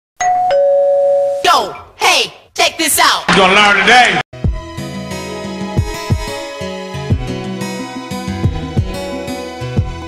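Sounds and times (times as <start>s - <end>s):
electronic ding-dong chime: 0.2s - 1.4s.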